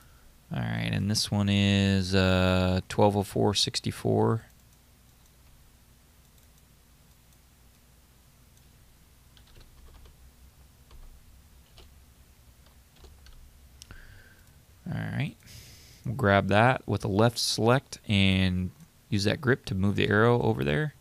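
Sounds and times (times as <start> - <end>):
low steady hum: 0.0 - 21.0
keyboard typing: 9.3 - 10.2, 10.9 - 12.0, 12.6 - 13.4.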